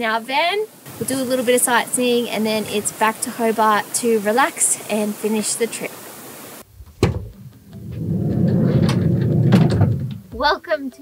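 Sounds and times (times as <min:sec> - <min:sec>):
sliding door unlatching clunk: 0:06.9 - 0:10.3
sliding door rolling on track: 0:07.1 - 0:10.2.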